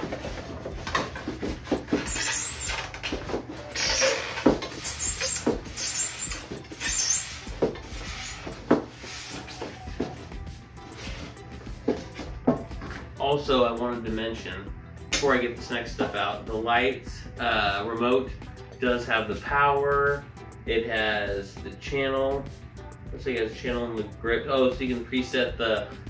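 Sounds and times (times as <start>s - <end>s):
knocks and rustles of parts: 0.0s - 10.2s.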